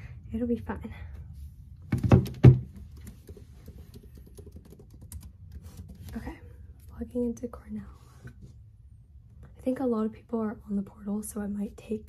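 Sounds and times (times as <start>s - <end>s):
keyboard typing: 2.9s - 6.0s.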